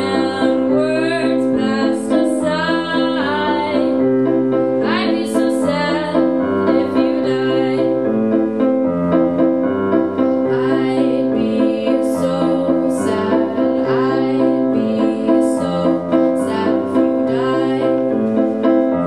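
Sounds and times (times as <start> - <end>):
woman singing a slow song: 0.0 - 4.0, 4.8 - 8.0, 10.4 - 18.1
electronic keyboard chords: 0.0 - 19.0.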